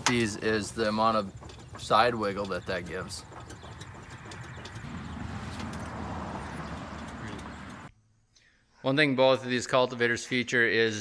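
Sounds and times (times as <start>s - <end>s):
metal linkage clicking: 0.0s - 7.9s.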